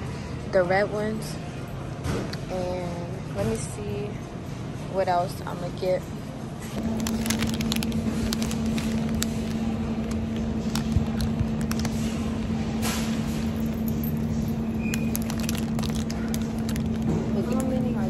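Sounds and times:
low hum: 6.0s - 18.0s
plastic sleeves crinkling: 6.8s - 12.5s, 14.5s - 18.0s.

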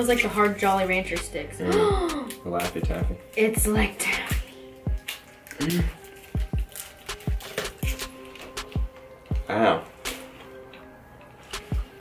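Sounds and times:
electronic music with kick drum: 1.2s - 5.0s, 5.6s - 10.4s, 11.5s - 12.0s.

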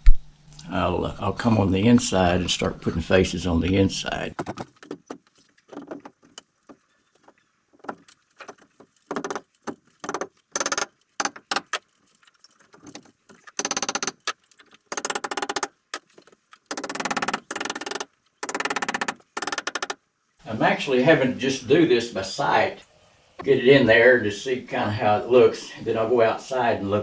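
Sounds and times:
timber knocks and scrapes: 4.4s - 14.9s.

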